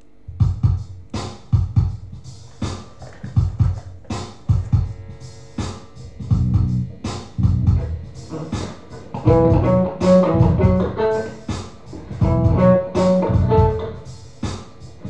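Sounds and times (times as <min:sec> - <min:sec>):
drum beat kick and snare: 0:00.3 - 0:15.0
electric guitar playing: 0:06.6 - 0:14.5.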